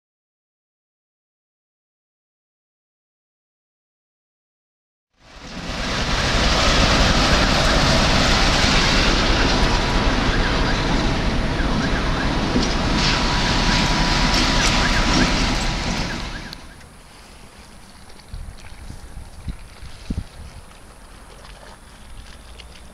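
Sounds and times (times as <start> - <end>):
loud vehicle noise: 5.2 - 17.9.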